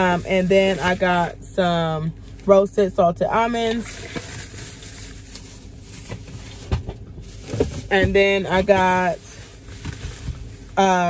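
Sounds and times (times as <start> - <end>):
grocery packages handled: 0.0 - 11.0
low background hum: 0.0 - 11.0.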